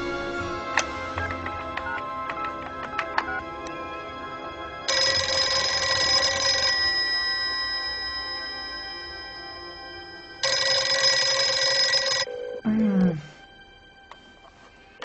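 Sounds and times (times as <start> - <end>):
electric bell ringing: 4.9 - 12.5.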